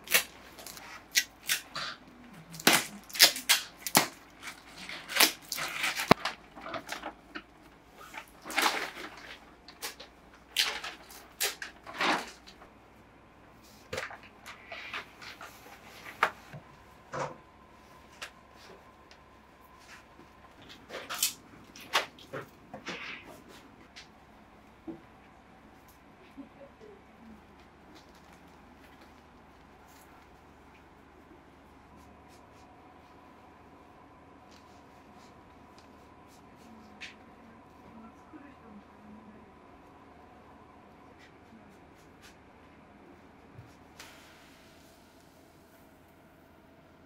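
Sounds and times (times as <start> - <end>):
paper sheets rustling: 2.6 - 7.4.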